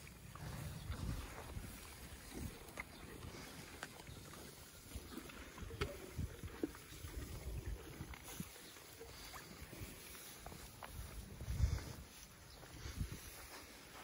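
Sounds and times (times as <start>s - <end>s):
ponies chewing hay: 0.0s - 14.0s.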